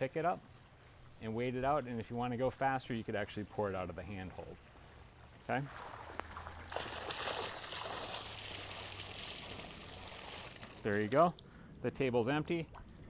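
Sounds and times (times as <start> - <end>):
water splashing into pool: 4.7 - 11.4.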